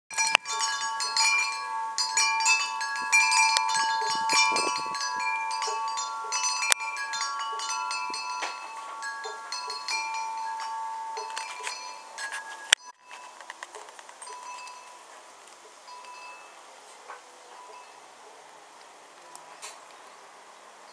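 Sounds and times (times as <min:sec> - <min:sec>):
wind chimes ringing: 0:00.1 - 0:18.3, 0:19.2 - 0:20.2.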